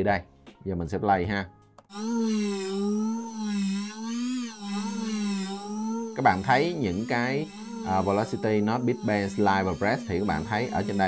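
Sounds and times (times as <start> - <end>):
synth pad with wavering pitch: 1.9 - 11.0.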